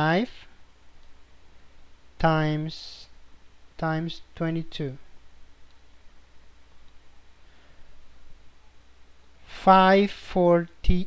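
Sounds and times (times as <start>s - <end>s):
faint microphone hiss: 0.0s - 11.0s
steady low hum: 0.0s - 11.0s.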